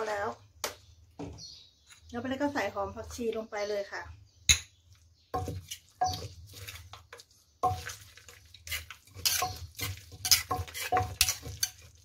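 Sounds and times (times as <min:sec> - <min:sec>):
pestle scraping in clay mortar: 0:05.4 - 0:12.0.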